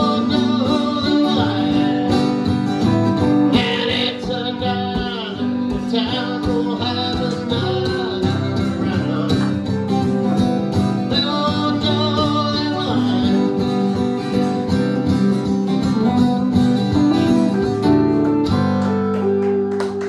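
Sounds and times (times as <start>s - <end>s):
electric guitar: 0.0s - 20.0s
strummed acoustic guitar: 0.0s - 20.0s.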